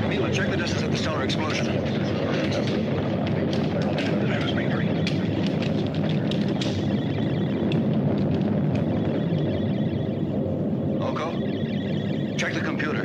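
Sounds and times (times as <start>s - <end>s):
spaceship low rumble: 0.0s - 13.0s.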